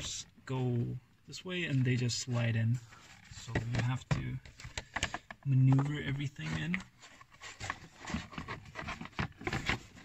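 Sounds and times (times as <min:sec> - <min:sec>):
plastic scraping against plastic: 0:01.6 - 0:10.0.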